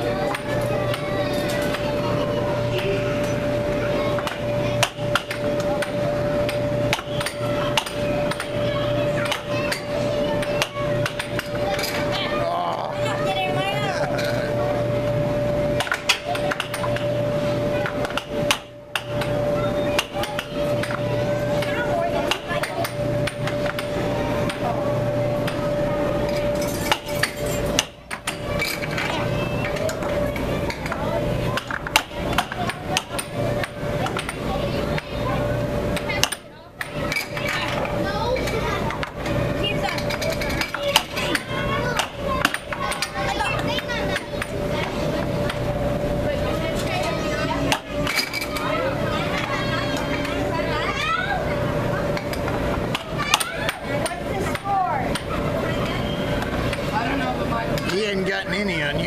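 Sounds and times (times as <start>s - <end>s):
children chattering: 0.0s - 59.0s
steady hum: 0.0s - 59.0s
air hockey puck and mallets clacking: 0.2s - 1.9s, 3.2s - 12.1s, 15.7s - 35.2s, 35.9s - 45.7s, 52.0s - 56.9s.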